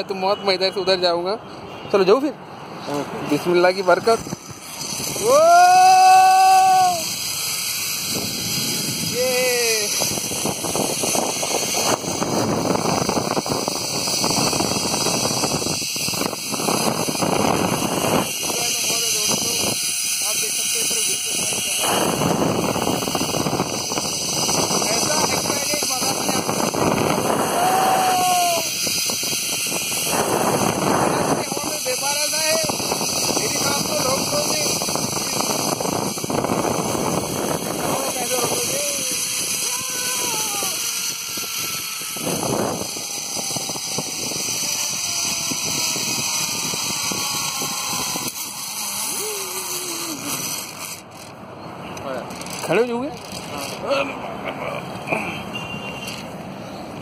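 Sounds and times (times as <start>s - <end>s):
wind buffeting microphone: 3.0s - 51.2s
man calling out: 9.1s - 10.0s.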